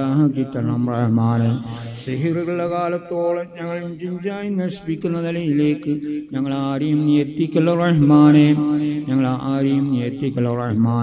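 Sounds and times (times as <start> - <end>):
man chanting a prayer: 0.0 - 11.0
breaths: 1.6 - 2.1, 6.0 - 6.3.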